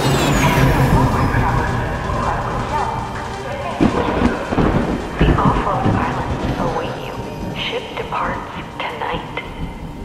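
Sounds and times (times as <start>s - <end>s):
deep rolling rumbles: 0.0s - 10.0s
steady hiss of rain: 0.5s - 10.0s.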